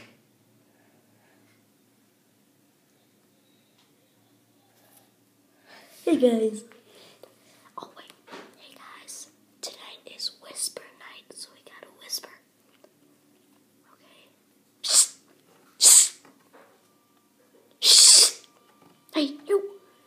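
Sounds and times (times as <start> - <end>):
boy whispering: 7.8 - 12.5
loud shushes: 14.8 - 15.2, 15.8 - 16.2, 17.8 - 18.4.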